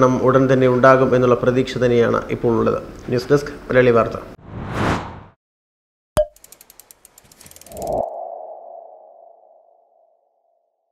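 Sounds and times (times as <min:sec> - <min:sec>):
fast ticks: 0:06.2 - 0:08.0.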